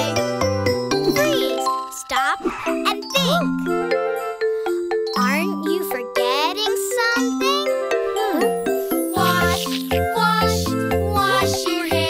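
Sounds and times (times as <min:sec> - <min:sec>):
children's song music with bells: 0:00.0 - 0:12.0.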